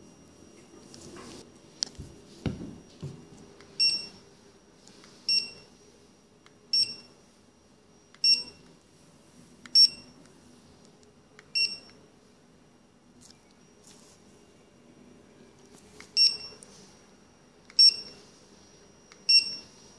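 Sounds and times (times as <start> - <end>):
barcode scanner beeping: 3.7 - 4.2, 5.3 - 5.7, 6.7 - 7.2, 8.1 - 8.6, 9.7 - 10.2, 11.4 - 12.0, 16.1 - 16.7, 17.7 - 18.2, 19.0 - 19.8.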